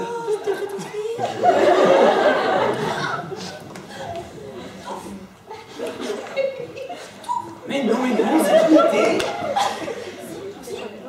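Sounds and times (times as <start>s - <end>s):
audience laughing: 0.4s - 11.0s.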